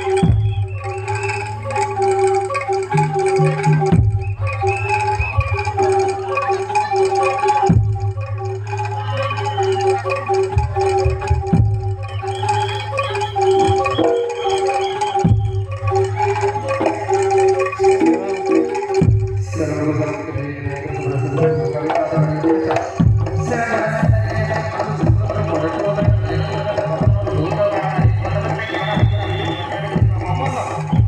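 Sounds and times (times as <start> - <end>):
metallophones playing melody: 0.0 - 31.0.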